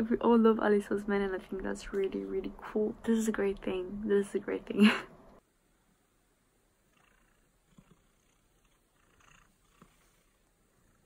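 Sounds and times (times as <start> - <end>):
cat purring: 6.7 - 11.0
cat being stroked on blanket: 9.7 - 10.5.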